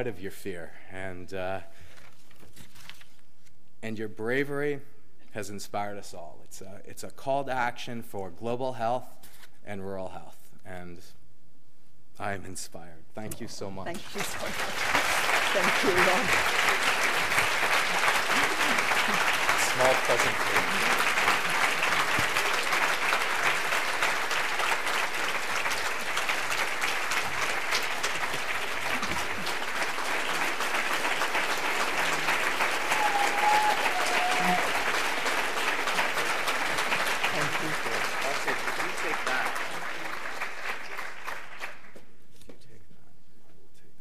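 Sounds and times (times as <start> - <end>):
audience applauding: 13.9 - 42.1.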